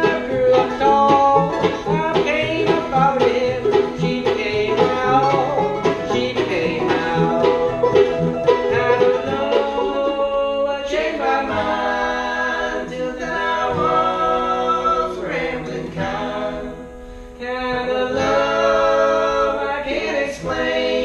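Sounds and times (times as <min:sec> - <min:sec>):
bluegrass string band playing: 0:00.0 - 0:21.0
vocal harmony singing: 0:00.0 - 0:21.0.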